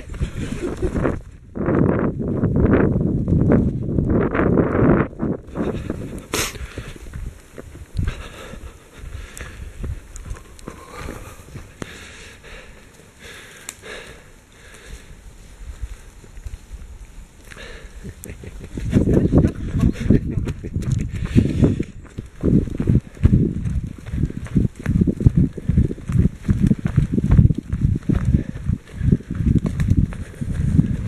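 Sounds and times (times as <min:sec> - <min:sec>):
footsteps on dirt trail: 0:00.0 - 0:31.0.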